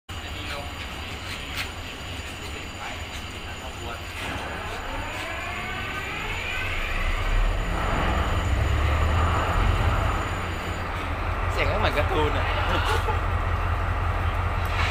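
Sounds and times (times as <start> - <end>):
diesel engine starting and rumbling: 3.9 - 14.9.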